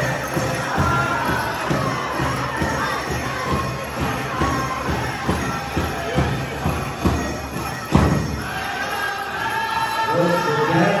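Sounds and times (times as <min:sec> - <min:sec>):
drum beating steadily: 0:00.0 - 0:11.0
group chanting: 0:00.0 - 0:11.0.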